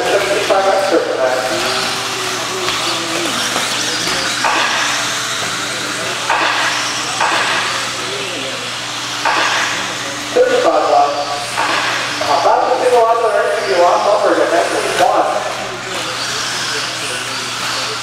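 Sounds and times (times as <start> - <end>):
electric motor whine: 0.0 - 18.0
rc cars passing: 0.0 - 18.0.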